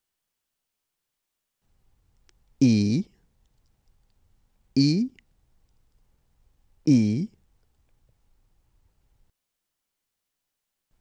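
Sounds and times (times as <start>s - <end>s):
person saying a letter name: 2.6s - 3.1s, 4.8s - 5.2s, 6.9s - 7.4s.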